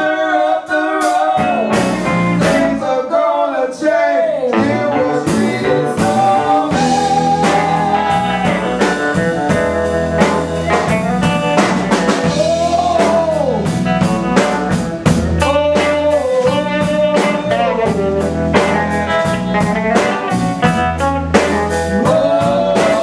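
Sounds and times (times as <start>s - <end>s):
drum kit steady beat: 0.0s - 2.8s, 4.6s - 23.0s
electric guitar: 1.2s - 2.8s, 4.5s - 23.0s.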